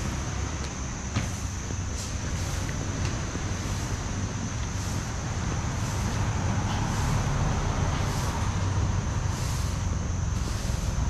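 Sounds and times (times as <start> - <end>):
road and wind noise: 0.0 - 11.0
vehicle engine running: 0.0 - 11.0.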